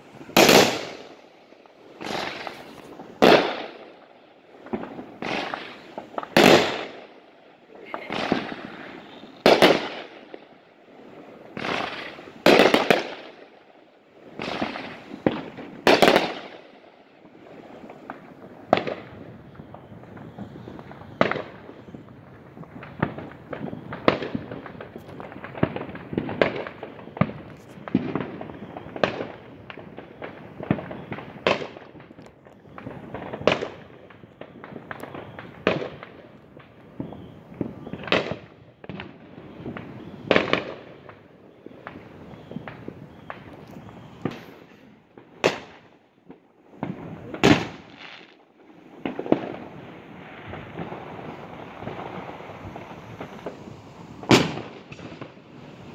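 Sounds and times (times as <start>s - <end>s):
fireworks exploding: 0.0s - 55.9s.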